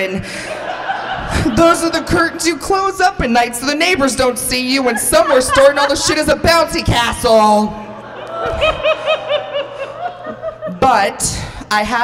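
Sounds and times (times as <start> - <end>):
person laughing: 8.2 - 10.9.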